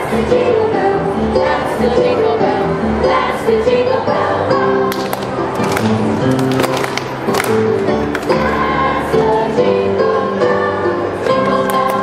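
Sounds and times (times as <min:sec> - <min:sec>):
children's chorus singing: 0:00.0 - 0:05.6, 0:08.2 - 0:12.0.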